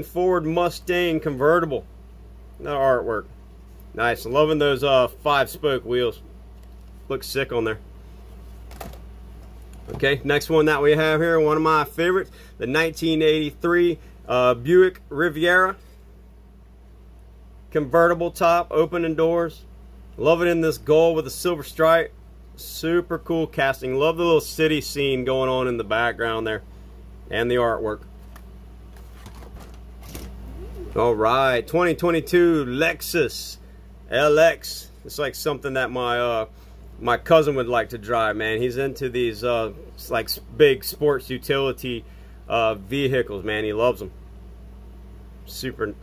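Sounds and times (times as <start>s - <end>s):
low steady hum: 0.0s - 46.0s.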